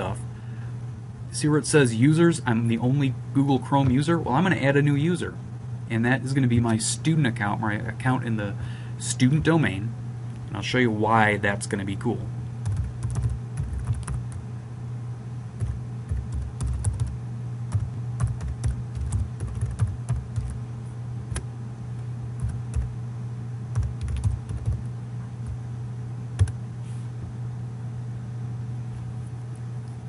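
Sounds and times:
low hum: 0.0s - 30.0s
keyboard typing: 12.6s - 14.4s, 15.6s - 20.6s, 22.4s - 22.9s, 23.7s - 25.6s, 26.4s - 26.6s.

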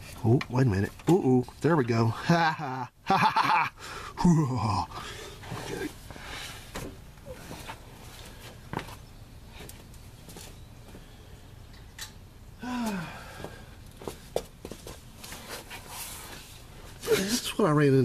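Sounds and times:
man laughing: 2.1s - 5.1s, 17.0s - 17.6s
man humming: 4.2s - 5.1s, 12.6s - 13.4s.

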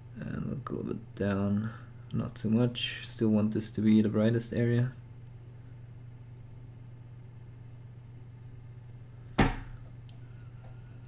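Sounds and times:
steady low hum: 0.0s - 11.0s
sharp knock: 9.4s - 9.8s.

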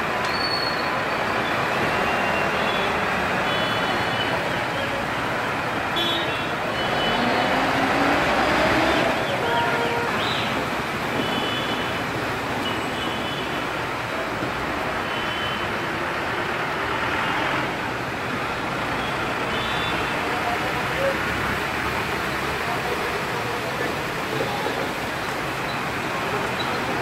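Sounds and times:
road traffic: 0.0s - 27.0s.

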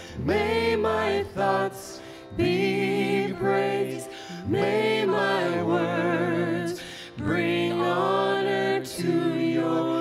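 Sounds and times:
piano: 0.0s - 10.0s
women singing worship song: 0.0s - 10.0s.

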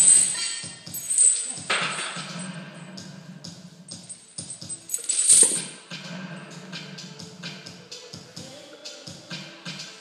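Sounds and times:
steel chains clinking and rattling: 0.0s - 2.6s, 3.9s - 5.8s.

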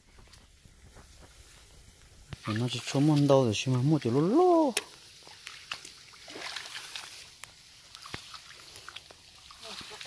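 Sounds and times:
water dripping: 2.3s - 10.0s
muddy water sloshing and splashing: 2.4s - 3.7s, 4.9s - 10.0s.

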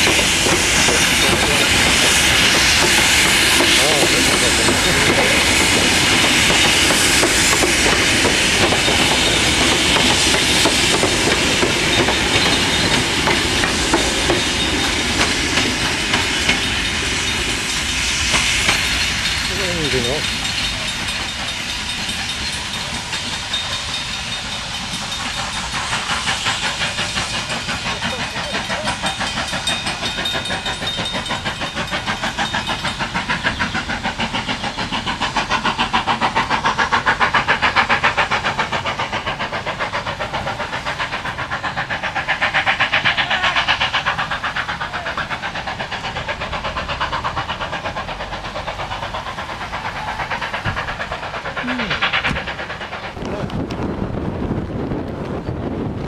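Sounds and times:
steam hiss: 0.0s - 55.9s
steam train running rhythm: 0.0s - 56.0s.

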